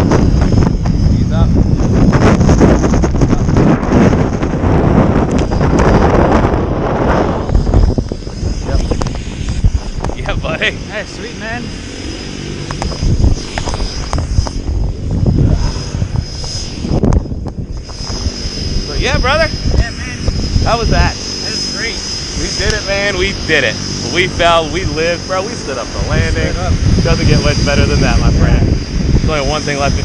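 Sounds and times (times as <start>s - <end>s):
wind rushing over microphone: 0.0s - 30.0s.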